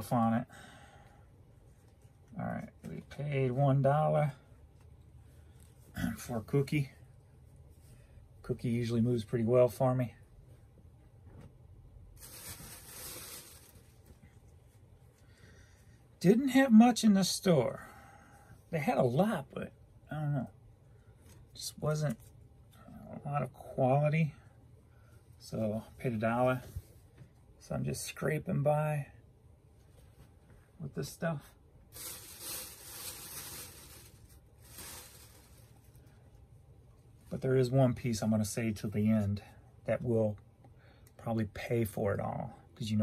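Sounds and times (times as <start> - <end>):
fabric rustling: 12.1 - 15.0, 31.9 - 36.2
bag being rummaged through: 12.2 - 14.0, 31.9 - 36.0.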